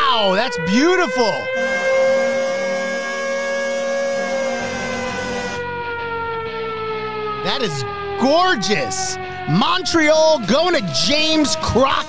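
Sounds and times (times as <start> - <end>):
air-raid siren: 0.0 - 12.0.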